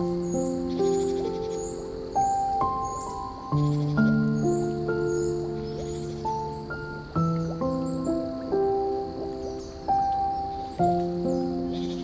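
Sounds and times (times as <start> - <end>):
gentle piano music: 0.0 - 12.0
running water hiss: 0.0 - 12.0.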